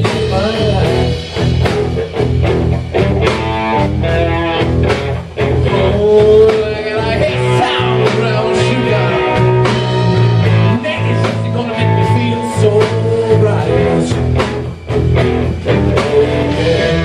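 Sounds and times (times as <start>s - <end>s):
bass guitar: 0.0s - 17.0s
drum beat: 0.0s - 17.0s
electric guitars: 0.0s - 17.0s.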